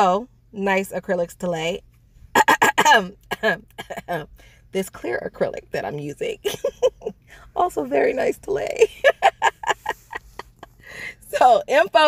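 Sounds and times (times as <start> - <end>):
woman coughing: 2.4 - 4.2.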